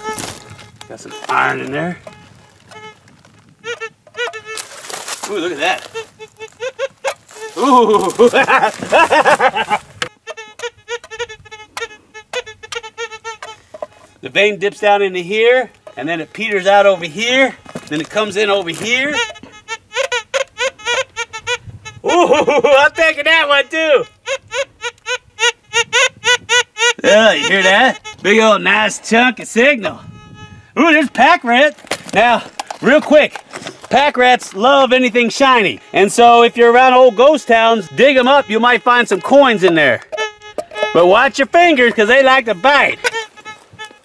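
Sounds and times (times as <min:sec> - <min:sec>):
metal detector tones: 0:00.0 - 0:22.2, 0:23.2 - 0:29.2, 0:29.9 - 0:44.0
metal detector beeps: 0:35.4 - 0:43.6.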